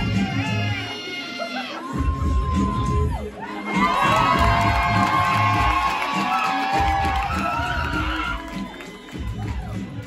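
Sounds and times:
backing music: 0.0 - 10.0
audience cheering and whooping: 1.6 - 10.0.

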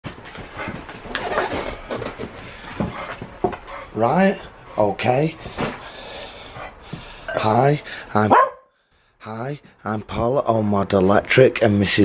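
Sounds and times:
dog panting: 0.1 - 1.2, 1.8 - 7.1.

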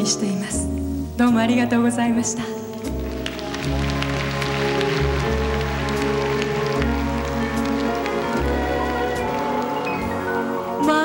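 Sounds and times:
band playing slow instrumental: 2.2 - 11.0.

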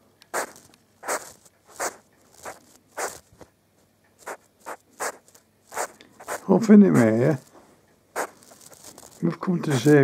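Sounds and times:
hedgehog puffing: 0.3 - 3.5, 4.2 - 10.0.

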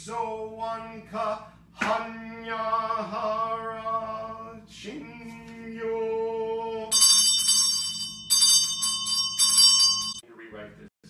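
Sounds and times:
small high-pitched bell ringing: 6.9 - 10.2.

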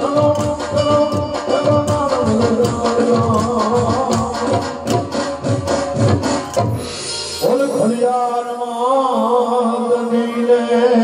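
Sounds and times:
drum beats: 0.0 - 8.3.

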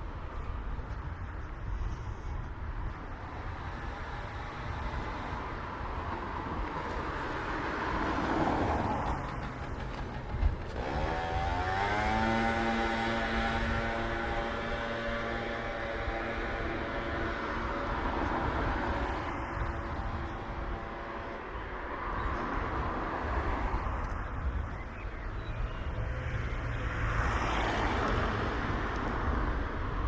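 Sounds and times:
car passing: 3.1 - 24.7, 25.9 - 30.0
motorbike engine speeding up: 8.1 - 21.4.

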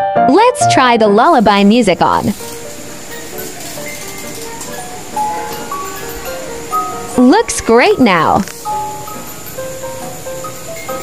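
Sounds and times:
electronic lullaby melody: 1.5 - 11.0.

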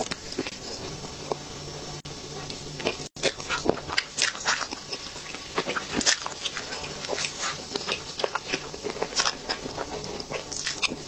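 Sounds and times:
wet chewing mouth sounds: 2.8 - 11.0.

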